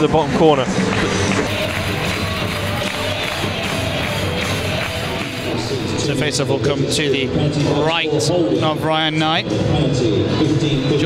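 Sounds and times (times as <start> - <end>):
crowd noise: 0.0 - 11.0
music over sound system: 1.0 - 11.0.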